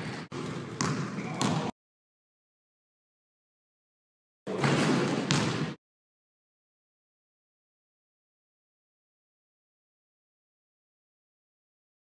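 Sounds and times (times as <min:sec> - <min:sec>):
basketball bouncing on court floor: 0:00.0 - 0:01.7, 0:04.5 - 0:05.8.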